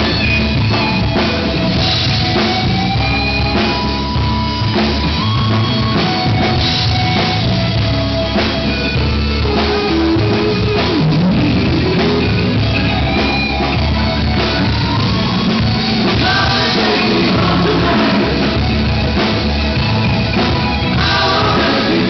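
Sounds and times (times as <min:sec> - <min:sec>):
drum kit steady beat: 0:00.0 - 0:22.0
electric guitar lead: 0:00.0 - 0:22.0
rock band playing: 0:00.0 - 0:22.0.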